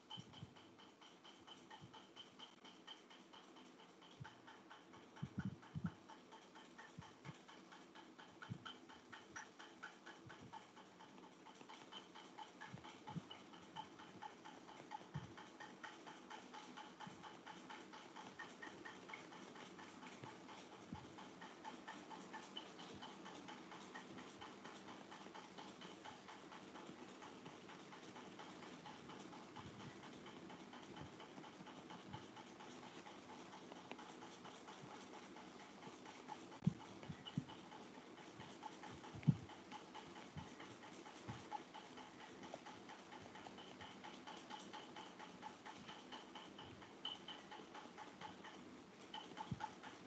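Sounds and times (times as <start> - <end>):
soft low thumps: 39.1 - 39.5.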